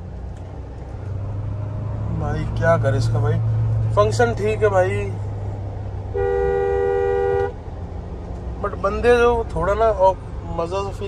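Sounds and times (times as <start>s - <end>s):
car cabin engine and road noise: 0.0s - 11.0s
two-note vehicle horn: 6.2s - 7.6s.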